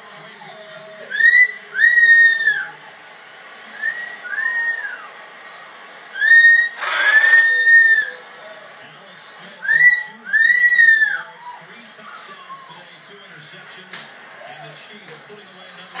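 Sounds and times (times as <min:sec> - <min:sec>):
tv football commentary: 0:00.0 - 0:16.0
cockatoo whistled calls: 0:00.4 - 0:02.8, 0:03.7 - 0:05.1, 0:06.1 - 0:08.4, 0:09.6 - 0:11.6.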